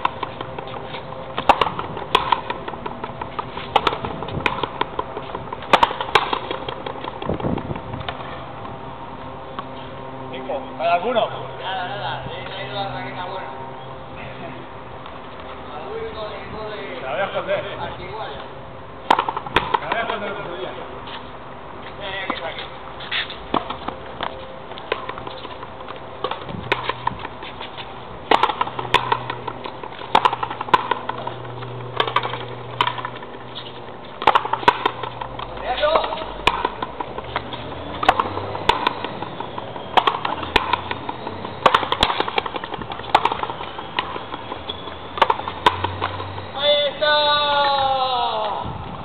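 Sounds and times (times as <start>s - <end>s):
rubber ball cracking off rackets: 0.0s - 8.8s, 19.0s - 20.3s, 23.5s - 46.4s.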